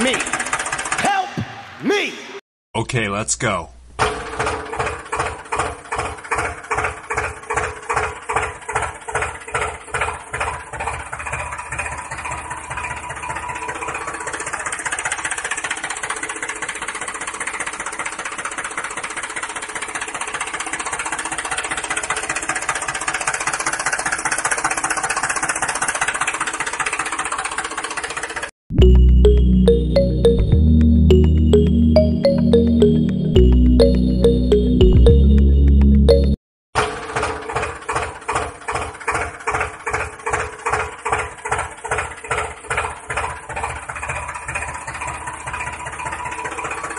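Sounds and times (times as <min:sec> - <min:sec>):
tractor engine chugging: 0:00.0 - 0:01.0, 0:04.2 - 0:28.5, 0:37.0 - 0:46.9.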